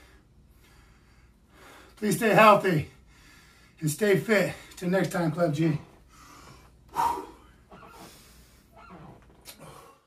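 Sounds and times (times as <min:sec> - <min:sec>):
faint breathing: 0:00.0 - 0:02.0, 0:02.9 - 0:03.8, 0:05.8 - 0:08.8
man blowing sharp breath: 0:06.1 - 0:08.7.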